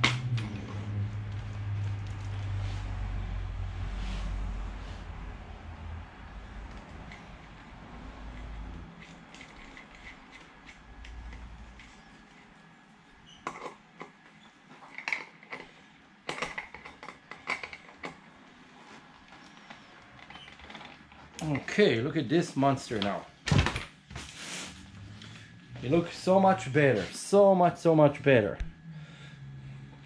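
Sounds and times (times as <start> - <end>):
low rumble: 0.0 - 8.9.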